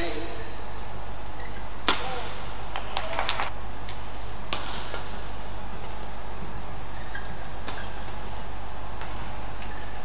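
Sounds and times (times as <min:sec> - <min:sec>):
badminton racket hitting shuttlecock: 0:03.9 - 0:06.1, 0:07.3 - 0:09.7.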